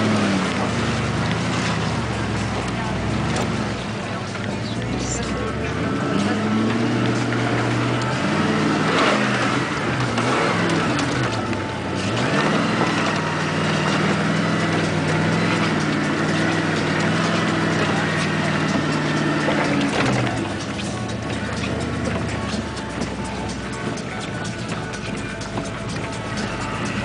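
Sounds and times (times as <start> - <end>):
car engine revving: 0.0 - 27.0.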